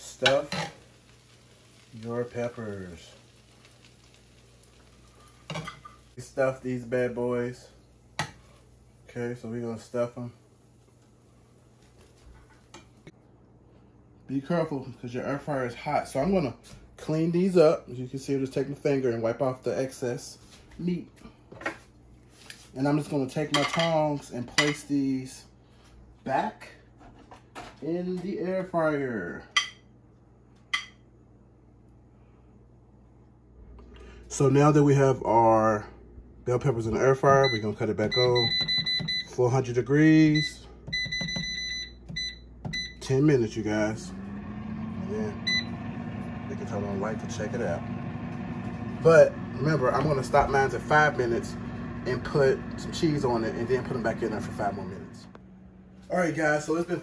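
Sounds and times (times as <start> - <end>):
food sizzling in skillet: 0.0 - 9.1.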